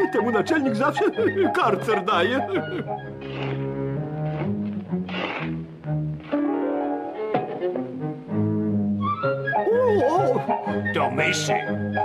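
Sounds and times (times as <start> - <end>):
orchestral cartoon music: 0.0 - 5.5, 6.2 - 12.0.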